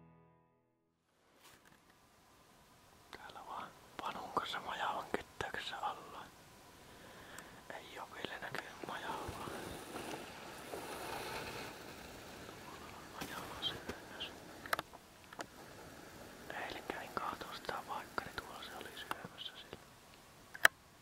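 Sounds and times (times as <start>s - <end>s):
person whispering: 3.2s - 6.3s, 7.7s - 9.8s, 12.6s - 14.4s, 16.5s - 19.8s.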